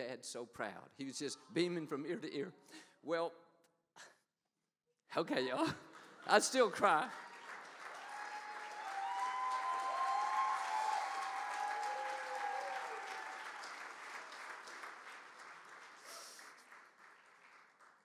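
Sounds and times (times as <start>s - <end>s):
audience applauding: 5.7s - 18.0s.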